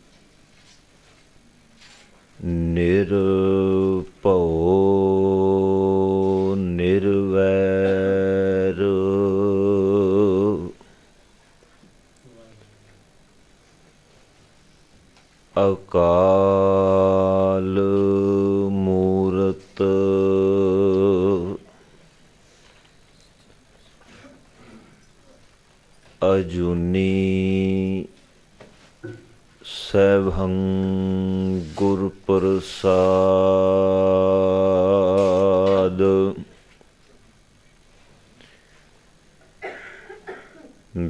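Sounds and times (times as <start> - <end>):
man chanting into a microphone: 2.4 - 10.8, 15.6 - 21.6, 26.2 - 28.1, 29.6 - 36.5.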